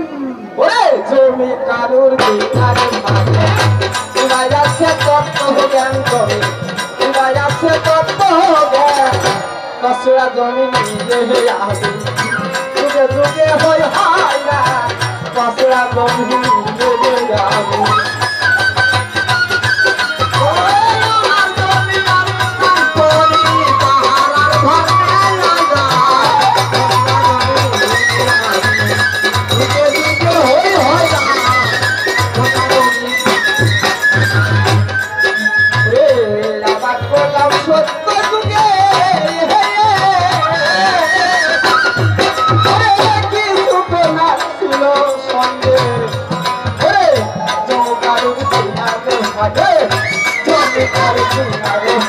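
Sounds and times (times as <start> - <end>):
held instrumental tone: 0.0 - 52.0
hand drums playing: 2.2 - 52.0.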